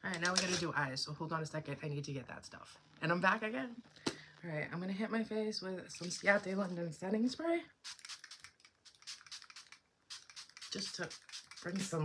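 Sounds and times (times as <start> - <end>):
mist bottle spritzing: 7.8 - 12.0.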